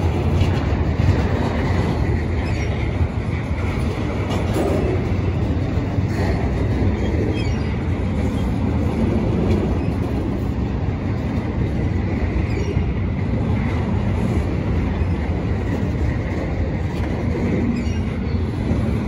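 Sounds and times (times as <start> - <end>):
freight train wheels rumbling: 0.0 - 19.0
high wheel squeal: 7.3 - 7.8, 17.7 - 18.4.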